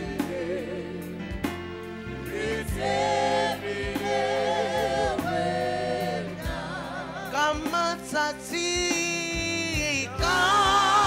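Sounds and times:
voices singing held notes: 0.0s - 1.3s, 2.1s - 9.4s
low accompaniment: 0.0s - 11.0s.

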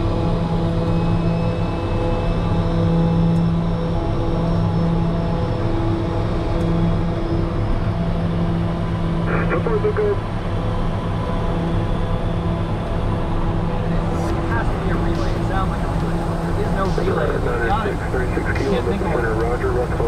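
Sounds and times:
turboprop engines droning in cockpit: 0.0s - 20.0s.

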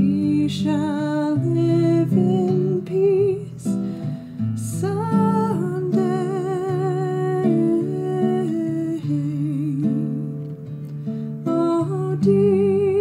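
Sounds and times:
acoustic guitar chords: 0.0s - 13.0s.

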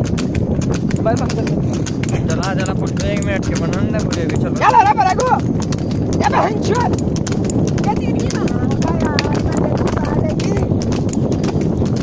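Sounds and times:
cart rattling: 0.0s - 12.0s
cart wheels rumbling: 0.0s - 12.0s
hooves clopping on asphalt: 0.0s - 12.0s.

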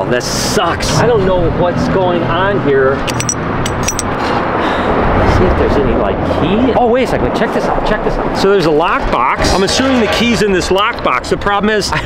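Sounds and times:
steady outdoor rushing noise: 0.0s - 12.0s
lockbox clicks and rattles: 3.1s - 4.1s.

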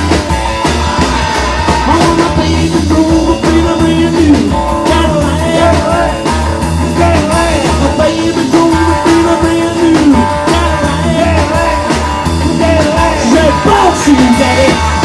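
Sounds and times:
drum kit beat: 0.0s - 15.0s
electric guitar lead line: 0.0s - 15.0s
upright bass: 0.0s - 15.0s.

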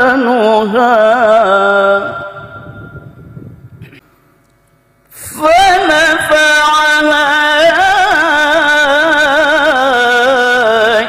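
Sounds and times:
low room rumble: 1.1s - 6.4s
echo of chanting over loudspeakers: 5.2s - 11.0s.

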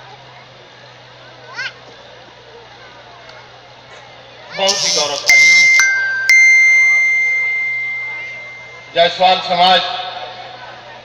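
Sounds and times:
person speaking: 4.6s - 5.9s
three-note chime: 5.3s - 9.5s.

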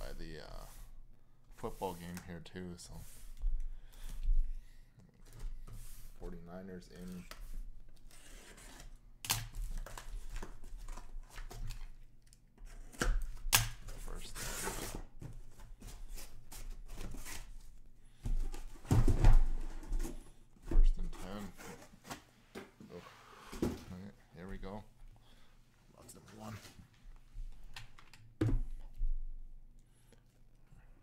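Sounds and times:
boxes sliding and handled: 14.2s - 17.5s.

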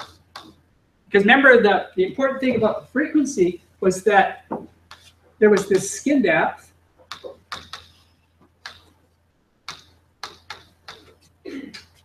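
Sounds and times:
chalk tapping and scratching: 0.0s - 0.6s, 4.5s - 6.1s, 7.0s - 9.1s, 9.7s - 12.0s.

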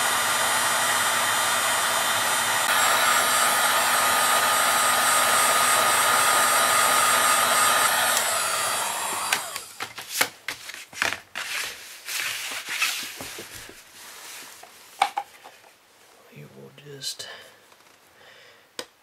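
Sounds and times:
fan winding down: 0.0s - 9.8s
heat gun blowing with whine: 0.0s - 9.9s.

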